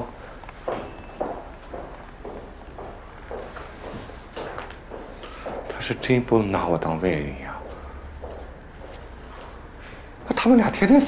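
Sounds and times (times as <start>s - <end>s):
footsteps walking: 0.0s - 11.0s.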